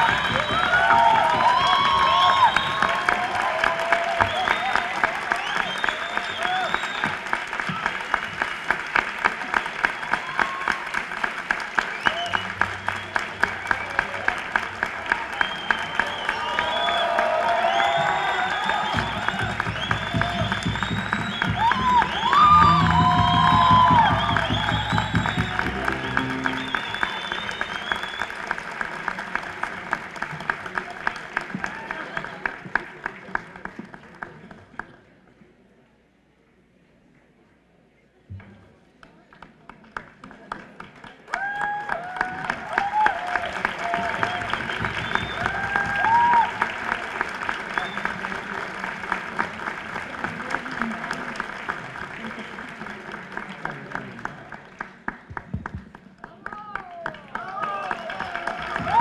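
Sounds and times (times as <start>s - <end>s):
cheers and shouts: 0.0s - 8.0s, 9.9s - 11.1s, 12.1s - 28.2s, 41.3s - 47.0s, 56.5s - 59.0s
rhythmic audience clapping: 0.0s - 35.1s, 39.0s - 59.0s.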